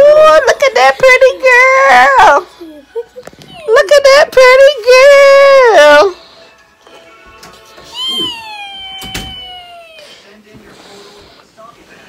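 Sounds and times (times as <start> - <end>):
long high-pitched vocal call: 7.9 - 10.2.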